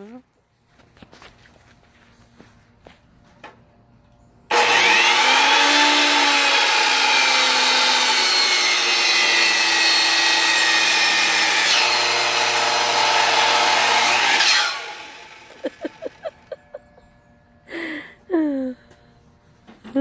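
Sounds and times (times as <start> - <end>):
miter saw cutting wood: 4.5 - 16.6.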